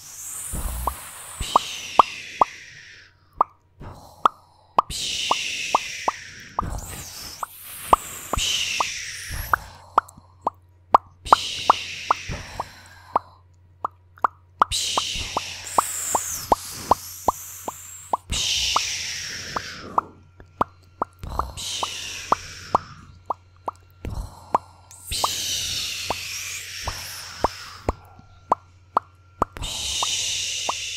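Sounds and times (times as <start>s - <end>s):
woman's mouth hissing and fizzing: 0.0s - 30.9s
woman's tongue pops and clicks: 0.3s - 2.6s, 3.4s - 30.9s.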